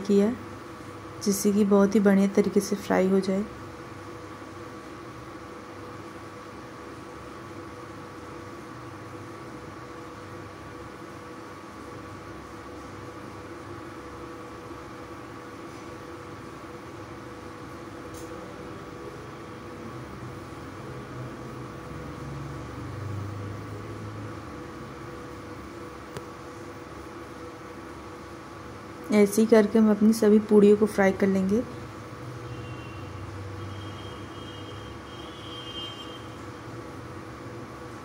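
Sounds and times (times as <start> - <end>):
induction cooktop hum: 0.0 - 38.0.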